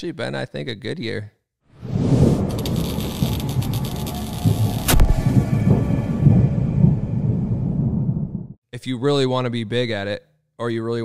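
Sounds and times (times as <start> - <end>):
heavy low rumble with crackling: 1.9 - 8.6
sharp crack: 2.3 - 6.3.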